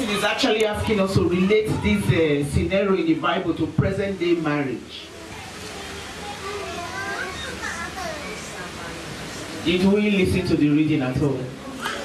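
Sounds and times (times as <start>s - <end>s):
children's high voices: 0.0s - 2.4s, 5.1s - 8.8s, 11.7s - 12.0s
indistinct chatter of people: 0.0s - 12.0s.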